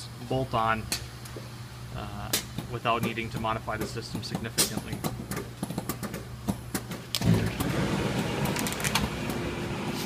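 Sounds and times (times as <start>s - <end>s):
parts washer humming: 0.0s - 10.0s
pump rushing noise: 7.2s - 10.0s.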